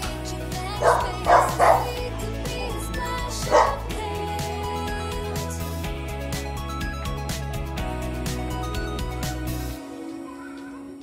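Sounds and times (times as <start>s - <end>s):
background music: 0.0s - 11.0s
dog barking: 0.8s - 2.0s, 3.4s - 3.9s.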